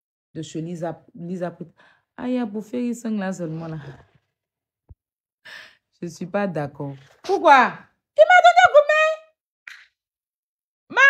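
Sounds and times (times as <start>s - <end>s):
woman breathing softly: 1.8s - 2.1s, 5.5s - 5.8s.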